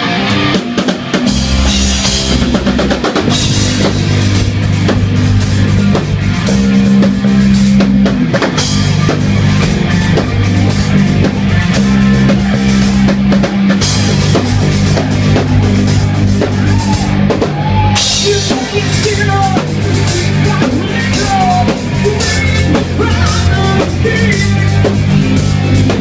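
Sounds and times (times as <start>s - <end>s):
drum kit with cymbals: 0.0s - 26.0s
held low guitar notes: 0.0s - 26.0s.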